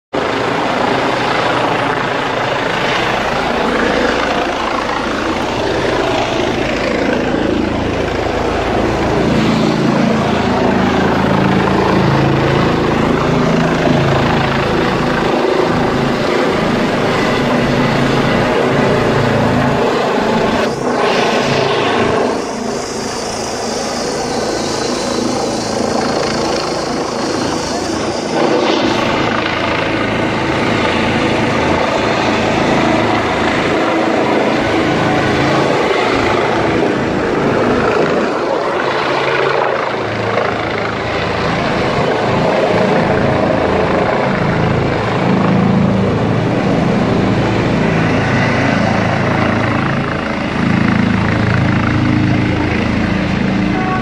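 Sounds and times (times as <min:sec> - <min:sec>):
helicopter rotor and turbine noise: 0:00.1 - 0:54.0.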